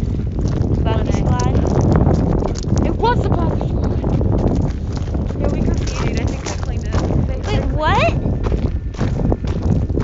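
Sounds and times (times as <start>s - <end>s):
footsteps on a path: 0.0s - 10.0s
wind rumbling on microphone: 0.0s - 10.0s.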